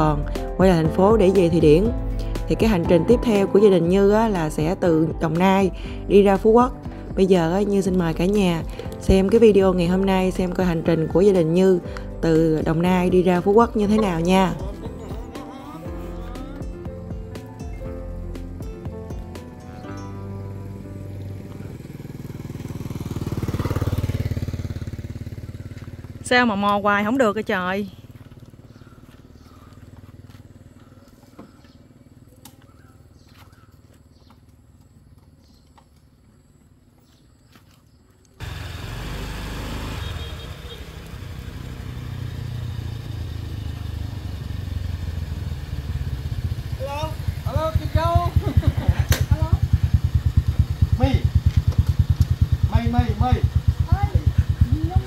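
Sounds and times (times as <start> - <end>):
motor scooter engines running: 0.0 - 55.0
voices: 2.5 - 16.8, 26.1 - 28.6, 46.8 - 50.2, 52.6 - 55.0.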